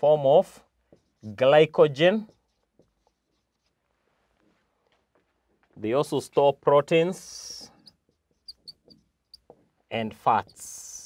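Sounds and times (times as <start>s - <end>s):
marker scratching on whiteboard: 0.8s - 3.9s, 7.4s - 9.7s, 10.3s - 11.0s.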